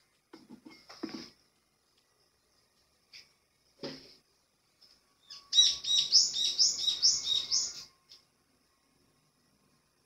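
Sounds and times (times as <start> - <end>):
songbird chirping: 1.5 - 10.0.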